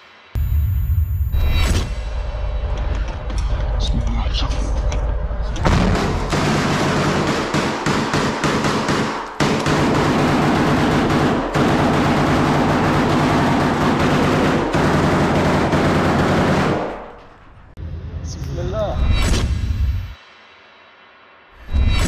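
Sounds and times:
automatic gunfire: 5.7s - 17.0s.

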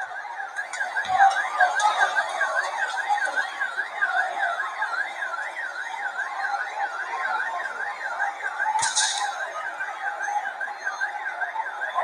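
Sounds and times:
electronic siren warbling: 7.2s - 11.2s.

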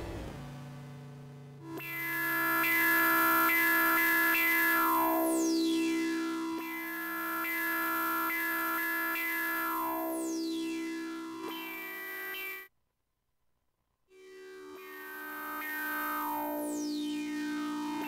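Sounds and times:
high tone sweeping downward: 0.0s - 0.5s
synthesizer drone and notes: 0.0s - 0.8s.

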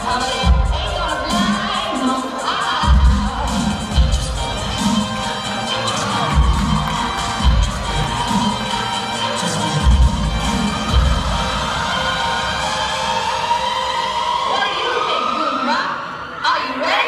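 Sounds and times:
crowd cheering and shouting: 0.0s - 17.0s
loud dance music: 0.0s - 17.0s.

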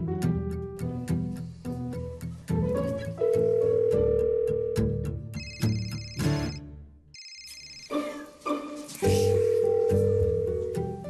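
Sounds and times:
background music: 0.0s - 11.0s
electronic telephone ringing: 3.4s - 6.6s, 7.2s - 8.1s.

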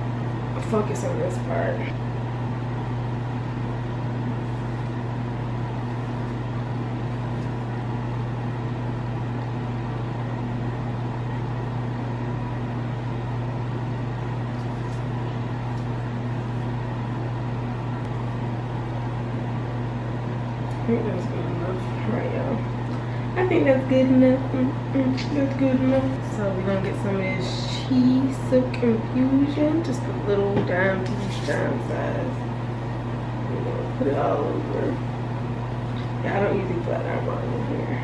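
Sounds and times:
hair dryer running: 0.0s - 10.8s, 11.5s - 38.0s.

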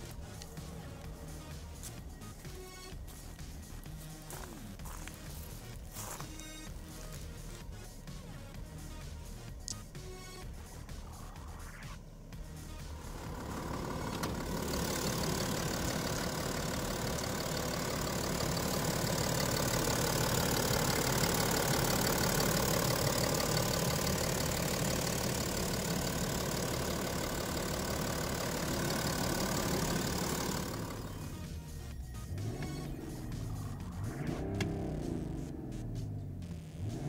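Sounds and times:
background music: 0.0s - 37.0s
diesel engine idling: 0.0s - 37.0s.

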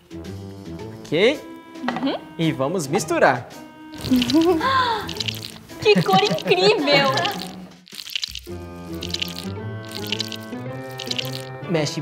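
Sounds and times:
wet squelching slime: 4.0s - 11.5s
laughter: 5.8s - 7.2s.

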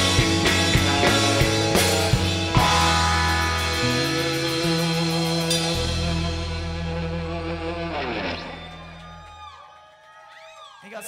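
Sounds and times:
rock chord on electric guitars and bass: 0.0s - 9.2s.

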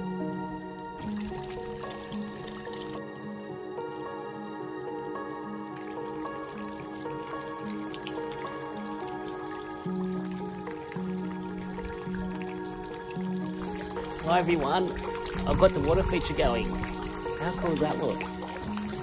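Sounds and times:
fountain water trickling: 0.0s - 19.0s
slow music of held notes: 0.0s - 19.0s.

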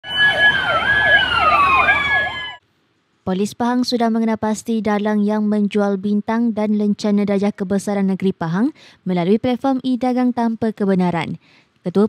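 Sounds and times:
siren wailing: 0.0s - 2.6s
siren yelping: 0.0s - 2.6s.

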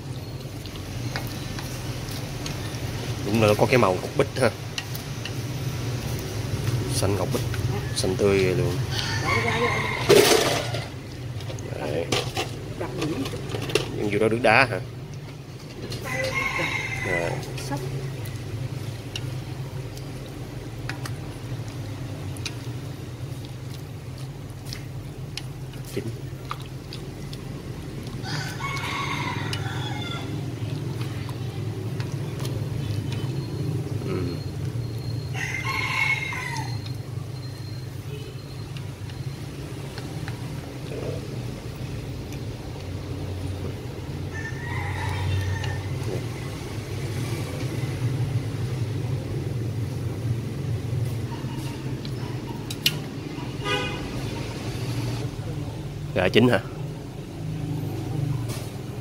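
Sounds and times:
rooster crowing: 8.8s - 11.0s, 15.9s - 17.6s, 28.2s - 30.5s, 35.2s - 37.0s, 44.2s - 46.1s.

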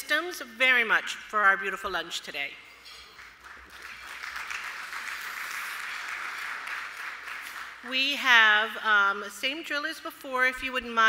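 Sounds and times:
audience applauding: 3.1s - 7.8s.

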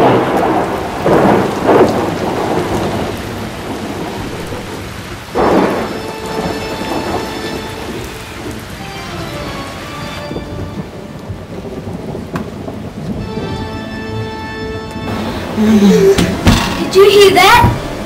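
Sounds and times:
thunderclaps: 0.0s - 8.8s, 10.2s - 14.0s, 14.9s - 18.0s
steady rain: 0.0s - 18.0s.

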